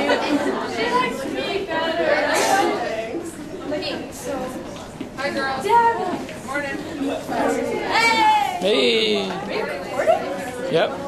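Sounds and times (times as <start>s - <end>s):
chatter of students: 0.0s - 11.0s.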